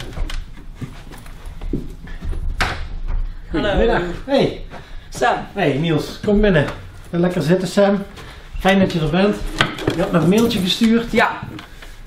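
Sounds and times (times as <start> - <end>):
footsteps: 0.0 - 12.0
chair shifting: 8.0 - 12.0.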